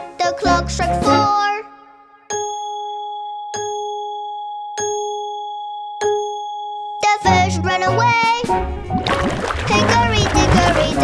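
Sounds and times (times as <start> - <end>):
children's song: 0.0 - 2.4, 6.9 - 8.8, 9.6 - 11.0.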